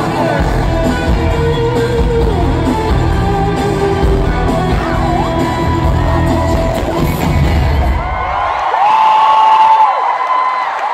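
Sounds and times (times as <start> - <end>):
pop music with heavy bass beat: 0.0 - 8.1
large crowd cheering and screaming: 2.3 - 10.9.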